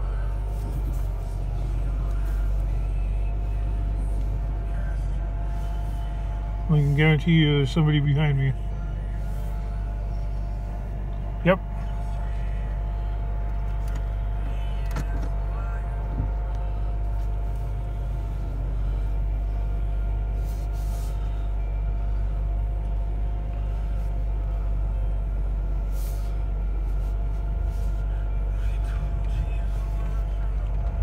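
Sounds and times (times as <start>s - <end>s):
car engine and tyres rumbling: 0.0s - 31.0s
faint steady whine: 0.0s - 31.0s.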